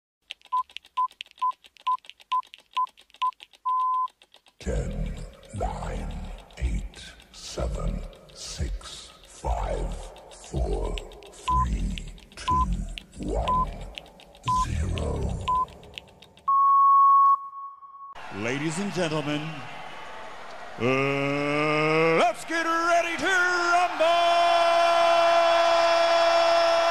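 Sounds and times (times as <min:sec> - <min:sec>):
fast clicking ticks: 0:00.2 - 0:16.5
short electronic beeps: 0:00.5 - 0:04.1, 0:13.5 - 0:13.8, 0:14.5 - 0:14.7, 0:15.4 - 0:15.7, 0:16.5 - 0:18.2
long electronic beep: 0:16.5 - 0:18.2.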